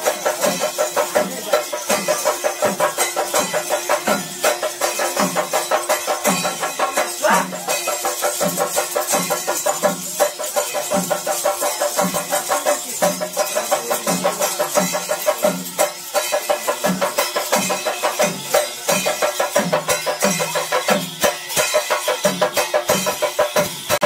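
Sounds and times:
small drums and jingles clattering: 0.0s - 24.0s.

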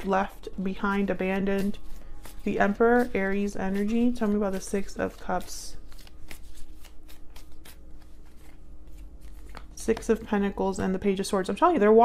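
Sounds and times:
cards being shuffled: 0.9s - 10.5s.

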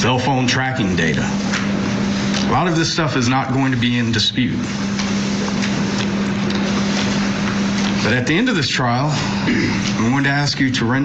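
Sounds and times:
speech: 0.0s - 1.4s, 2.5s - 4.7s, 8.0s - 11.0s.

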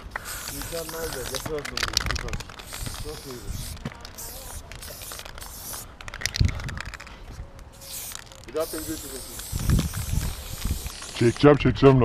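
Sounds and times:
spray paint can hissing: 0.0s - 7.1s, 7.7s - 11.5s.

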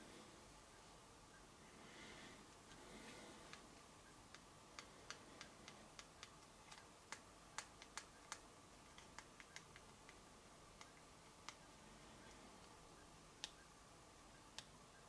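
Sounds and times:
faint sharp clicks: 2.5s - 3.7s, 4.3s - 10.2s, 10.8s - 12.8s, 13.4s - 13.7s, 14.4s - 14.8s.

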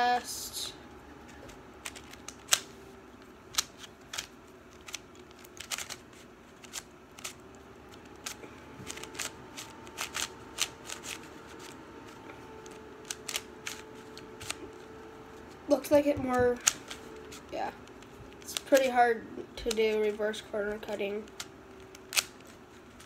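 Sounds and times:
puzzle cube layers clicking: 1.8s - 2.7s, 3.5s - 11.8s, 12.6s - 14.7s, 15.9s - 18.9s, 21.2s - 23.0s.

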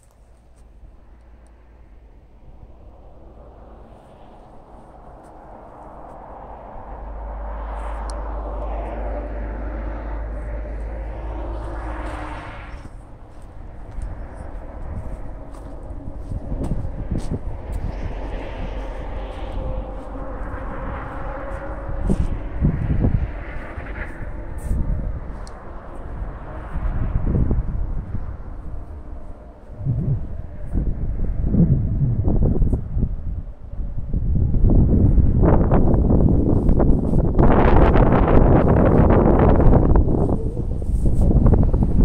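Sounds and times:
wind buffeting microphone: 0.0s - 42.0s
vehicle passing: 0.1s - 42.0s.

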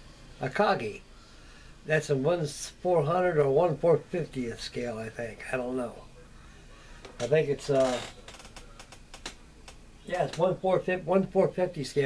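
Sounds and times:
faint clicks and light ticks: 8.1s - 10.5s.

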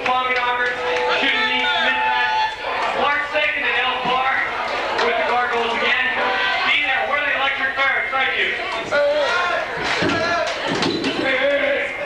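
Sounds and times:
shouted vocals: 0.8s - 3.0s, 5.0s - 7.1s, 8.5s - 12.0s.

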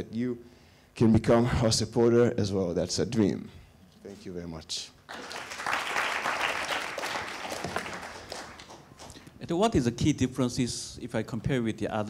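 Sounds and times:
audience applauding: 5.1s - 9.2s.

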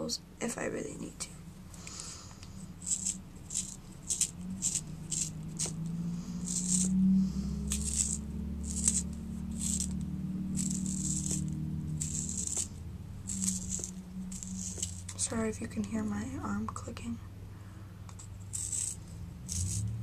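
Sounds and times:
low hum: 0.0s - 20.0s
pencil sharpener scraping wood: 2.8s - 6.9s, 7.7s - 15.3s, 18.1s - 19.9s.

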